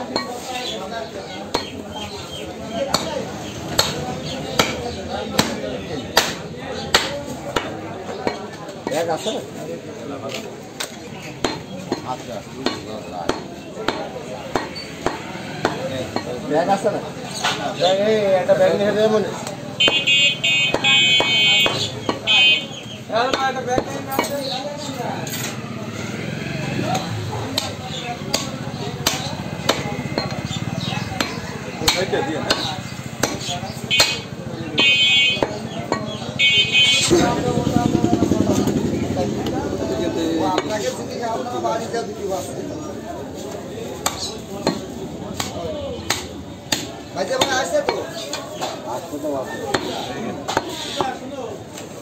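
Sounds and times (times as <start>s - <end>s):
cleaver chopping meat on wood: 1.5s - 9.0s, 10.8s - 16.4s, 19.4s - 24.4s, 27.0s - 36.2s, 44.0s - 48.8s, 49.7s - 51.2s.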